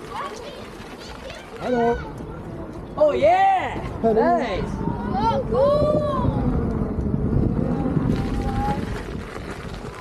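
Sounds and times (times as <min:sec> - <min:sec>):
wind on microphone: 0:03.8 - 0:10.0
tyres rolling over wooden planks: 0:06.6 - 0:10.0
wheels hissing on gravel: 0:07.2 - 0:10.0.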